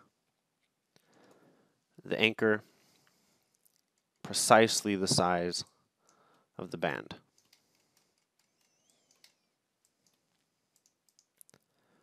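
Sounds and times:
faint computer mouse clicks: 0:07.4 - 0:11.6.

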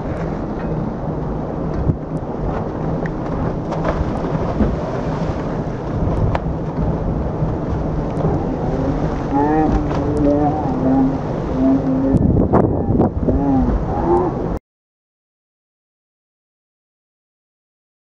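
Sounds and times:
boat engine humming: 0:00.0 - 0:14.6
wake rushing and splashing: 0:00.0 - 0:14.6.

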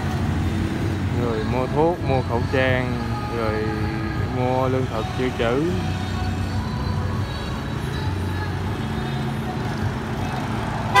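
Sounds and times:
motorbikes passing: 0:00.0 - 0:11.0
steady engine hum: 0:00.0 - 0:11.0
car passing: 0:09.3 - 0:11.0.

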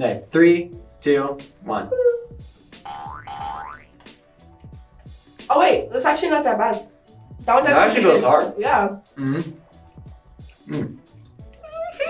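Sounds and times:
light background music: 0:00.0 - 0:12.0
cartoon boing: 0:02.9 - 0:03.9.

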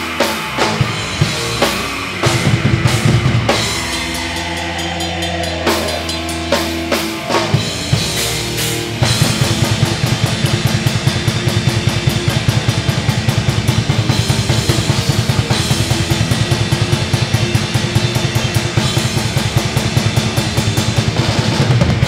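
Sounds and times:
distorted guitars and bass: 0:00.0 - 0:22.0
rapid bass drum strokes: 0:00.0 - 0:22.0.

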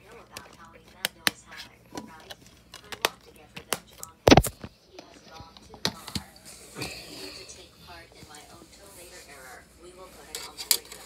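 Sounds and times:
muffled voices talking: 0:00.0 - 0:11.0
plastic dvd case clicks: 0:02.0 - 0:04.6.

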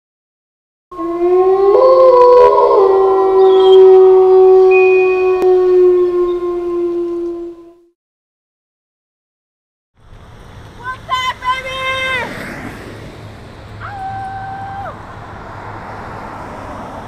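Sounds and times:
loud held chord of tones: 0:04.6 - 0:05.6.

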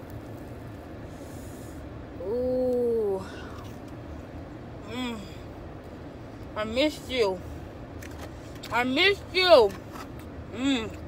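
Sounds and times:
low rumble inside car: 0:00.0 - 0:11.0.

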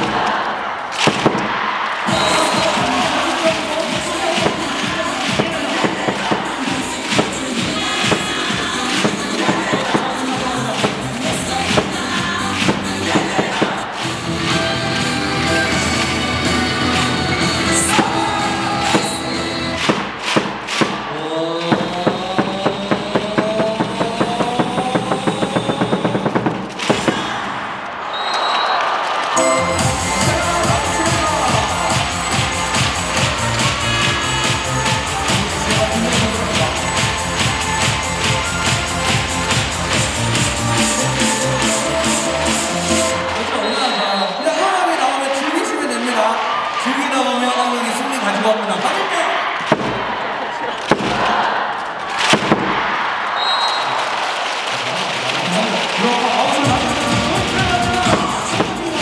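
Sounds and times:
upbeat dance music: 0:02.0 - 0:27.5, 0:29.4 - 0:46.6, 0:56.0 - 0:59.0.

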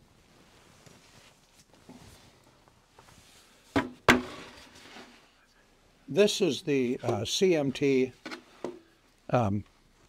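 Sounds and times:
faint handling rustles: 0:00.0 - 0:03.7.

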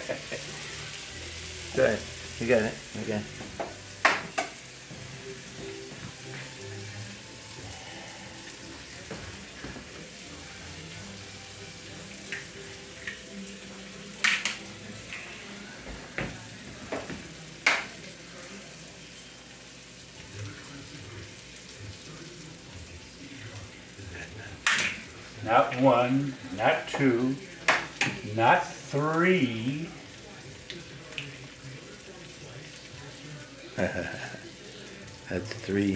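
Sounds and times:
shrimp sizzling in a frying pan: 0:00.0 - 0:35.9.

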